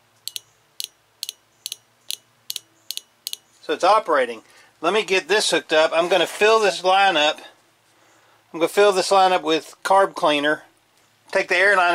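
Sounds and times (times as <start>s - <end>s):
fuel injector clicking: 0.2s - 3.4s.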